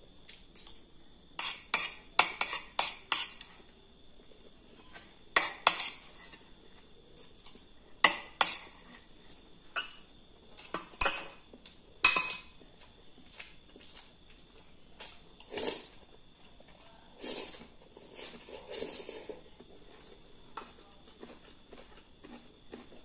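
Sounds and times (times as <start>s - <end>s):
high insect trill: 0.0s - 23.0s
metal spoon scraping ceramic bowl: 1.4s - 3.6s, 5.4s - 6.5s, 7.5s - 9.2s, 9.8s - 11.4s.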